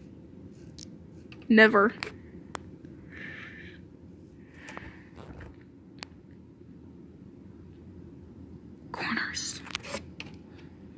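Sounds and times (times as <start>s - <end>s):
low room hum: 0.0s - 10.9s
person whispering: 8.9s - 9.7s.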